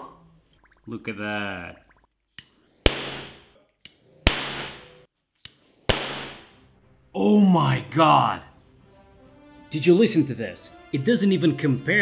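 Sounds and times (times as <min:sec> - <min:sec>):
gas igniting with sharp bangs: 0:02.8 - 0:03.5, 0:04.2 - 0:05.1, 0:05.9 - 0:06.6.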